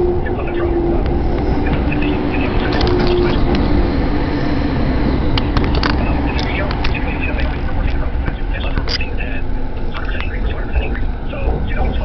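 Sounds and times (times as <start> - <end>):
electric train rumbling: 0.0 - 12.0
sharp clicks: 8.3 - 9.1.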